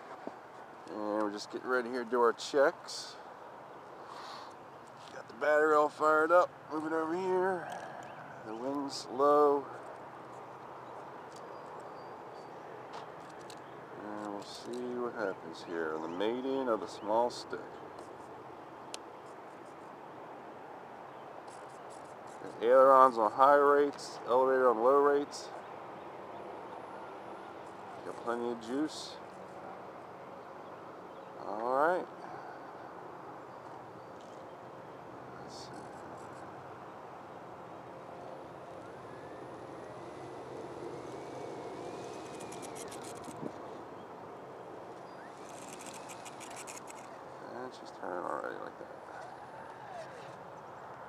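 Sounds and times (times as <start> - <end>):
outdoor background noise: 0.0 - 51.0
steady wind noise: 34.8 - 47.4
electric motor and propeller whining: 38.4 - 43.9, 45.1 - 47.2.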